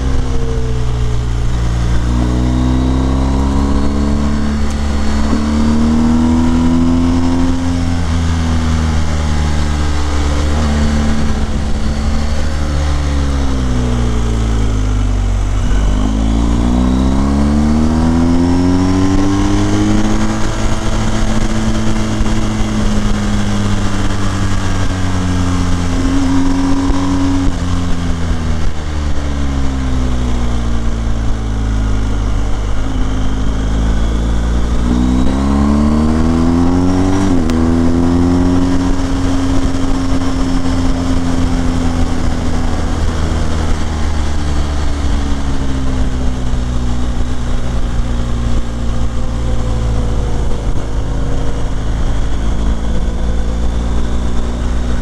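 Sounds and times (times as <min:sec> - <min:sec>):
motorcycle engine revving: 0:00.0 - 0:55.0
road noise: 0:00.0 - 0:55.0
wind rush: 0:00.0 - 0:55.0.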